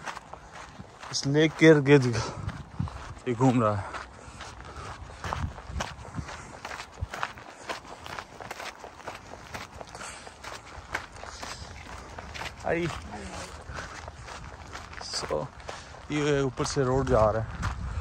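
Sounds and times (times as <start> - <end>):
footsteps on gravel: 0.0 - 18.0.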